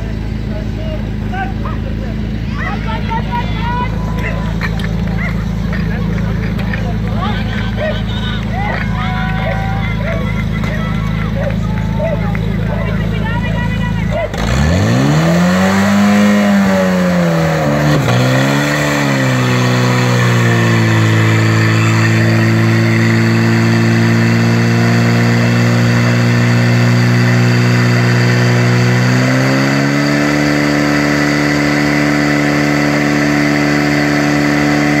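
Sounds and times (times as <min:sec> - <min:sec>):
pump engine idling and revving: 0:00.0 - 0:35.0
voices shouting: 0:01.0 - 0:14.5.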